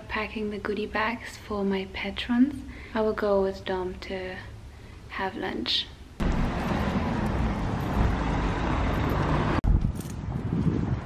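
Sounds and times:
street noise: 6.2s - 11.0s
wind buffeting microphone: 6.2s - 11.0s.

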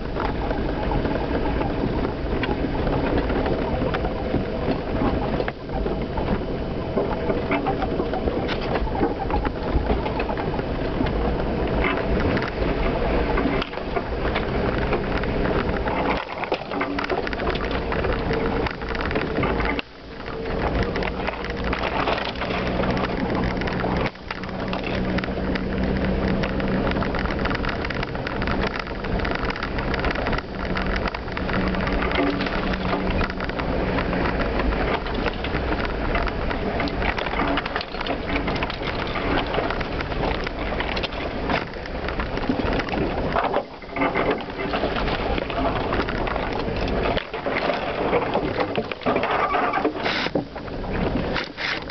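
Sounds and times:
engine hum: 0.0s - 51.9s
rattles and knocks in vehicle: 0.0s - 51.9s.

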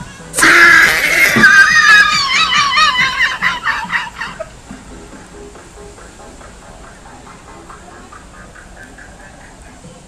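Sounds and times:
faint dance music: 0.0s - 10.0s
bursts of laughter: 0.4s - 4.5s.

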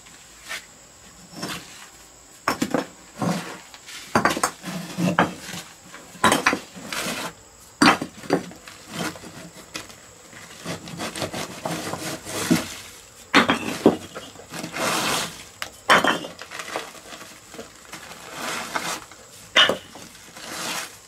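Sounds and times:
knocks of gritty debris: 2.4s - 3.4s, 4.1s - 5.6s, 6.2s - 7.1s, 7.8s - 15.0s, 15.7s - 20.8s
gloved hands scraping rubble: 10.4s - 12.7s, 16.0s - 21.0s.

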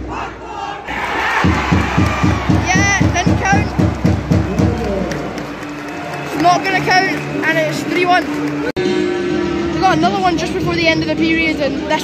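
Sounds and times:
fast thudding beat: 1.2s - 5.4s.

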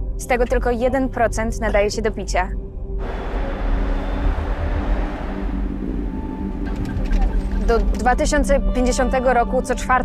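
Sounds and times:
low music drone: 0.0s - 10.0s
tram rumble and hiss: 3.0s - 8.4s.

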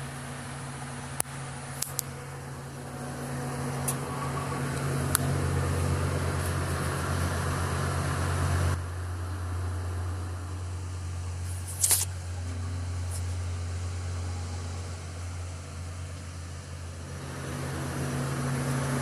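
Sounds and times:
diesel engine running: 0.0s - 19.0s.

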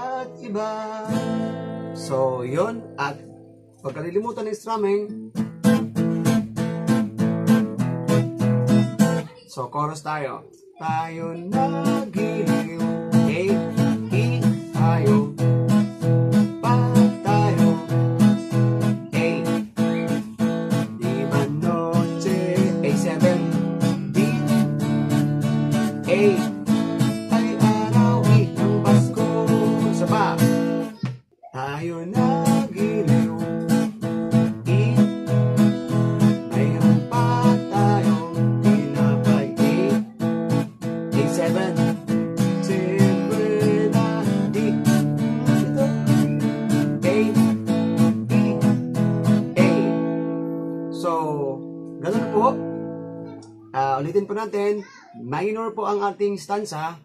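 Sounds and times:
acoustic guitar strumming: 0.0s - 9.9s, 10.6s - 56.4s.

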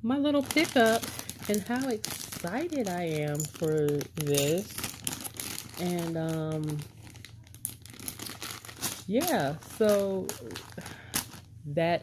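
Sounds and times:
plastic bag crinkling: 0.4s - 11.6s.

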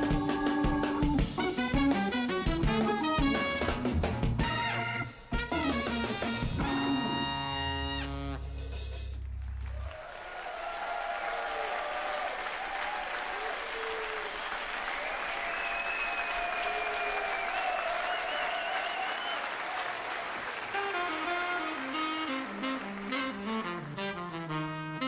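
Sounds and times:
audience clapping: 9.2s - 24.7s.

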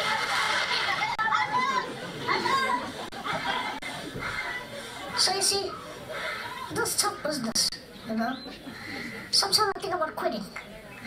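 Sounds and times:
children calling out: 0.0s - 7.5s.

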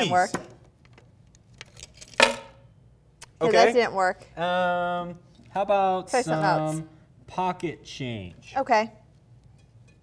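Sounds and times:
keys clinking and jingling: 1.5s - 2.4s.

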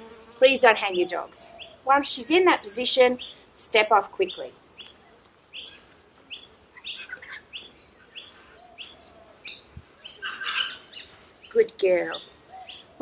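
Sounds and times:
bird chirping: 0.0s - 13.0s.

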